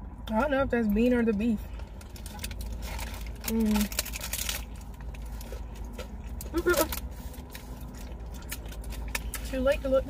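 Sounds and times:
crispy taco shell crunching: 0:01.7 - 0:09.6
paper wrapper crinkling: 0:01.9 - 0:09.5.

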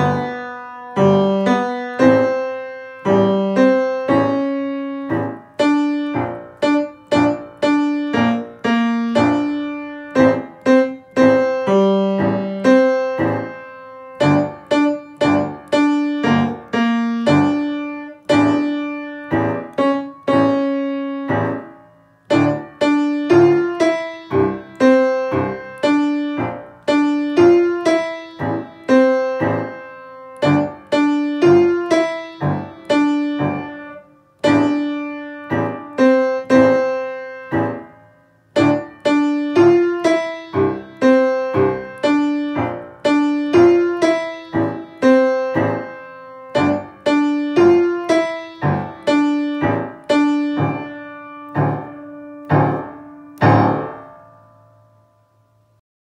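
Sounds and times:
single-note piano melody: 0:00.0 - 0:55.8.

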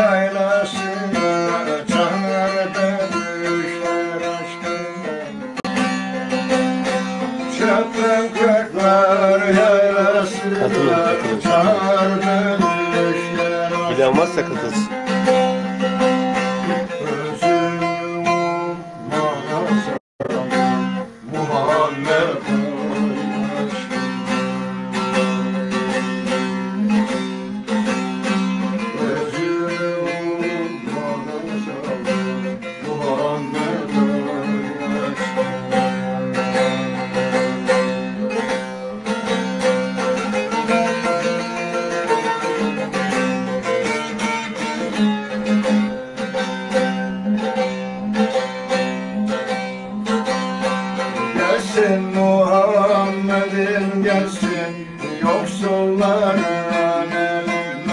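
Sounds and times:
long-necked lute solo: 0:00.0 - 0:57.9.

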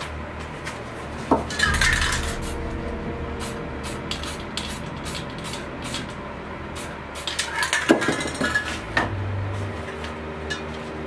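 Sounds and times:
steady low hum: 0:01.6 - 0:11.0.

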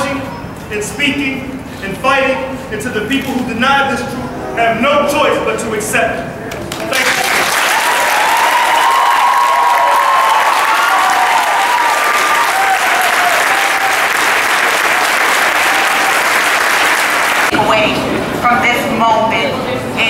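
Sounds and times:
crowd clapping: 0:06.5 - 0:17.6.

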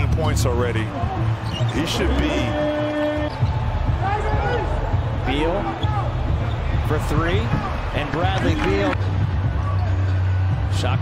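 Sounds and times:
sneakers squeaking: 0:01.2 - 0:03.9.

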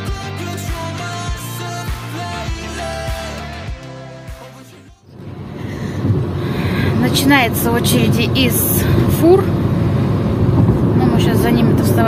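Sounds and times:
road and engine noise in car: 0:05.0 - 0:12.0.

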